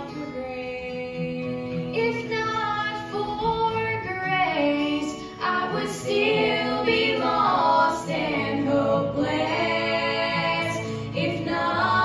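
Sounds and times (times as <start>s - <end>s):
acoustic guitar: 0.0s - 12.0s
women singing in harmony: 0.0s - 12.0s.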